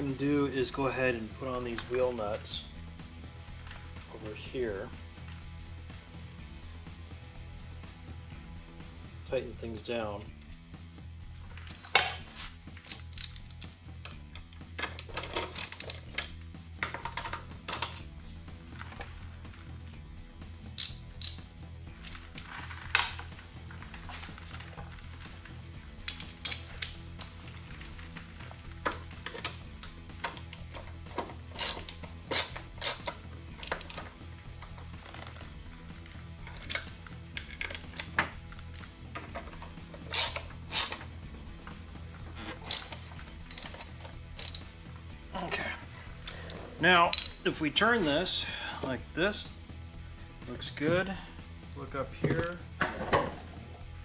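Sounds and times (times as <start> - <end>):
background music: 0.0 - 54.0
metallic clinks of hand tools: 42.5 - 44.7, 47.1 - 47.4.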